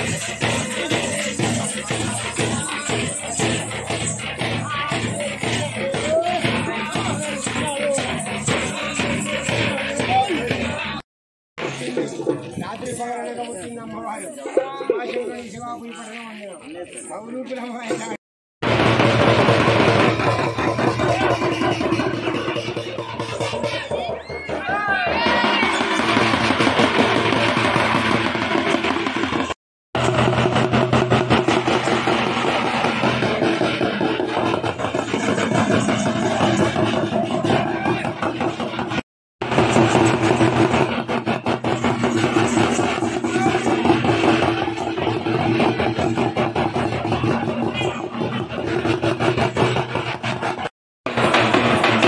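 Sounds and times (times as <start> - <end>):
crowd voices: 0.0 - 11.0, 11.6 - 18.2, 19.4 - 52.0
stick drumming on large drums: 0.0 - 11.0, 18.6 - 52.0.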